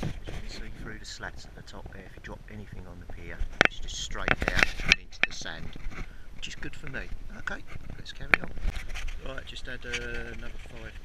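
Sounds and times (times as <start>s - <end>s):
man talking: 0.3s - 8.6s, 9.2s - 11.0s
sharp clicks and scrapes: 3.0s - 11.0s.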